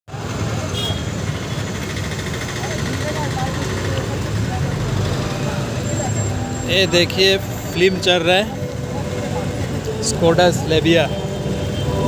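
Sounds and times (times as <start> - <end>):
low rumble of vehicle engines: 0.1 - 12.0
faint voices: 2.4 - 12.0.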